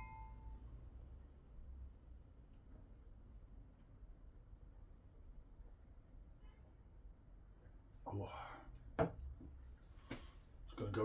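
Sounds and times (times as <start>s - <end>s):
beer glass ringing: 0.0s - 0.5s.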